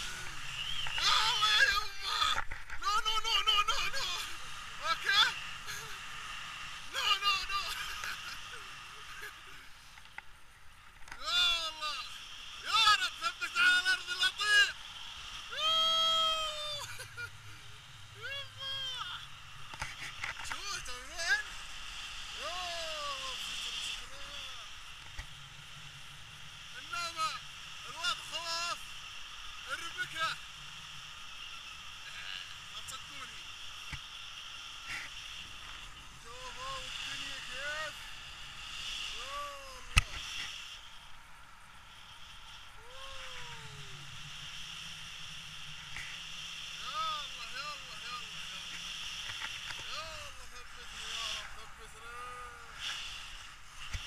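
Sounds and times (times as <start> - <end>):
air rushing on microphone: 0.0 - 9.7
man calling out: 1.0 - 5.5, 6.9 - 7.8, 11.2 - 14.8, 15.5 - 17.0, 18.2 - 19.4, 22.4 - 24.7, 26.8 - 28.8, 39.1 - 40.2, 42.8 - 44.0, 49.9 - 52.8.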